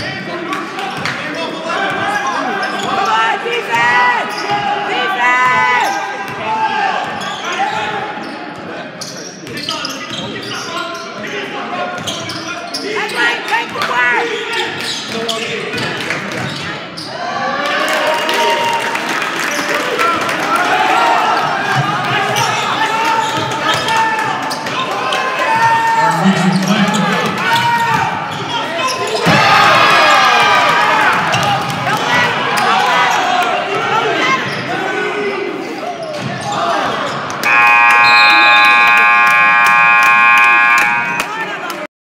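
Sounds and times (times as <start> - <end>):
crowd talking and calling out: 0.0 - 17.4, 19.5 - 41.9
scoreboard horn blast: 37.4 - 41.8.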